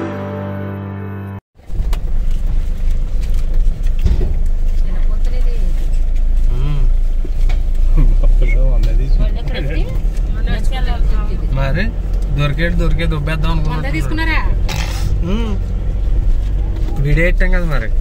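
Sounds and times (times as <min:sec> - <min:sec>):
intro music: 0:00.0 - 0:01.4
car driving rumble inside cabin: 0:01.6 - 0:18.0
people talking: 0:07.9 - 0:14.6, 0:15.2 - 0:15.6.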